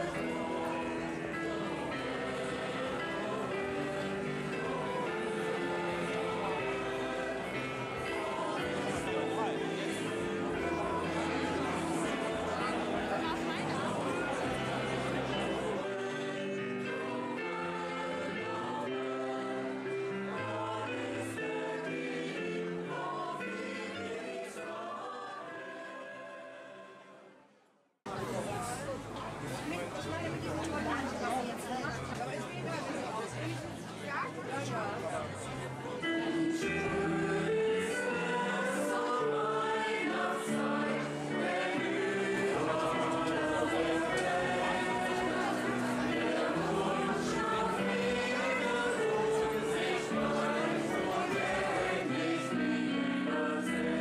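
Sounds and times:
choir singing in harmony: 0:00.0 - 0:27.6, 0:34.1 - 0:54.0.

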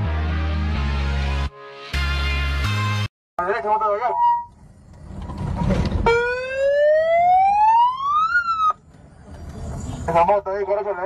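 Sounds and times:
low road rumble: 0:03.4 - 0:11.0
siren wailing: 0:04.0 - 0:04.6, 0:06.0 - 0:08.8.

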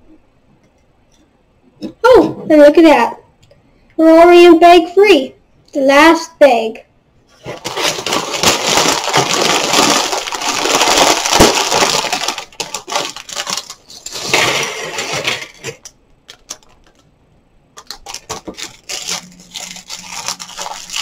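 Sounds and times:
plastic bag crinkling: 0:07.3 - 0:17.1, 0:17.8 - 0:21.0
plastic pieces clicking onto table: 0:14.2 - 0:17.1.

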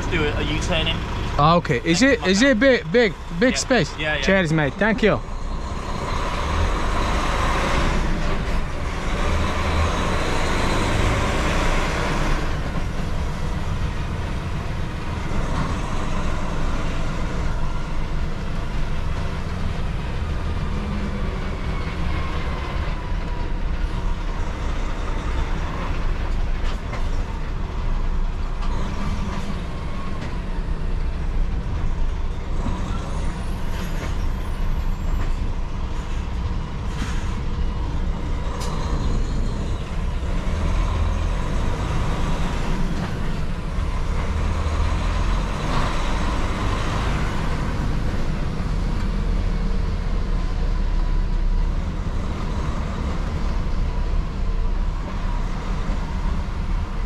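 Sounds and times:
diesel engine low rumble: 0:00.0 - 0:57.0.

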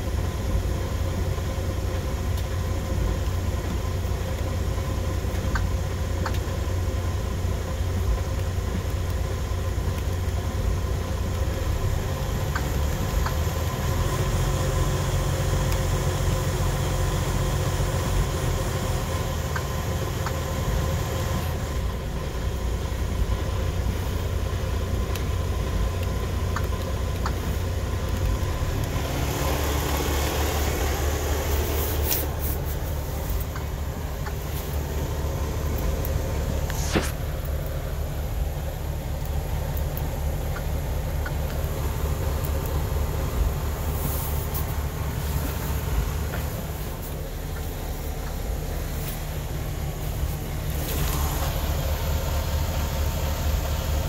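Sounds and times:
diesel truck engine idling: 0:00.0 - 0:54.0
rustling: 0:31.4 - 0:37.3.

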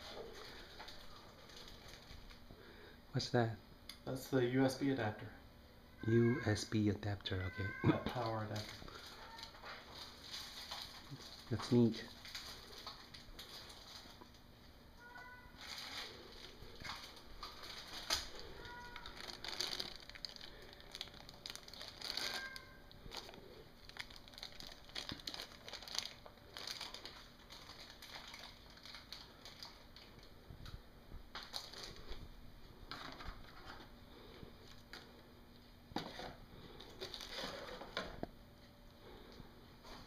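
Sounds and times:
packaging crinkling: 0:00.0 - 0:02.4, 0:08.2 - 0:30.4, 0:31.3 - 0:32.3, 0:36.2 - 0:38.2.

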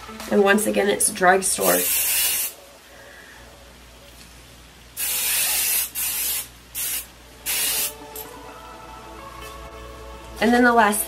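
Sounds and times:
aerosol can spraying: 0:01.6 - 0:02.6, 0:05.0 - 0:08.0.

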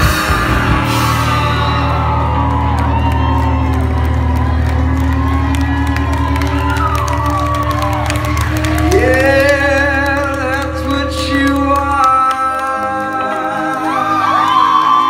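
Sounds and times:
live rock band chord: 0:00.0 - 0:06.2
audience cheering and whooping: 0:00.0 - 0:15.0.

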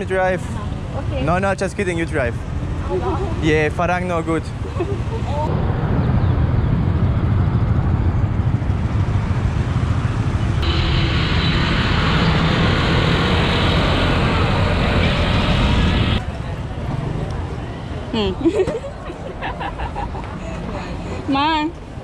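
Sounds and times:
wind rushing over microphone: 0:04.6 - 0:17.6.

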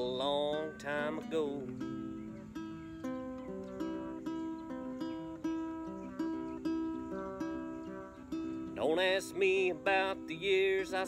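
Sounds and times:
acoustic guitar picking chords: 0:00.0 - 0:11.0.

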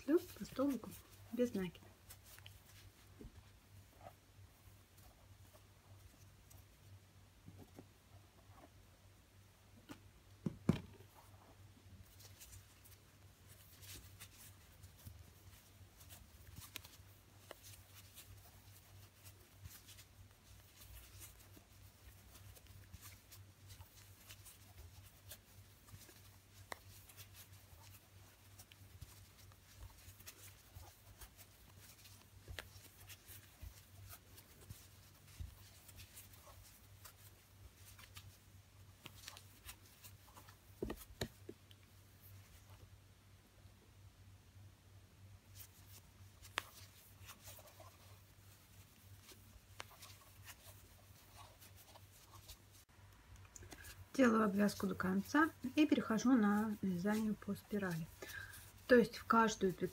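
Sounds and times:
low steady hum: 0:00.0 - 0:59.9
crochet hook rustling and clicking: 0:09.8 - 0:42.8, 0:45.5 - 0:59.9
knock: 0:10.4 - 0:11.0.

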